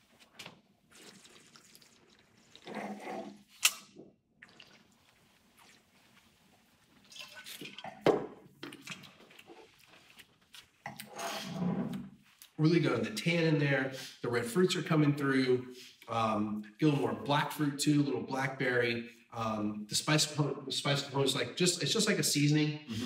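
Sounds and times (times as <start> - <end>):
person slurping wine: 0.9 - 3.5, 10.9 - 12.0.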